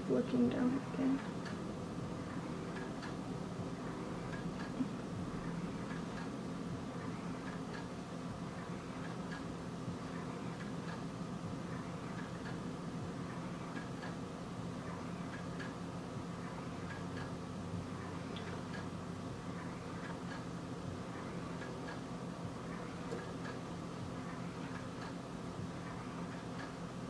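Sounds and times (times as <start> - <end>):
steady low hum: 0.0 - 27.0
faint light ticking: 18.3 - 18.9, 19.6 - 20.6.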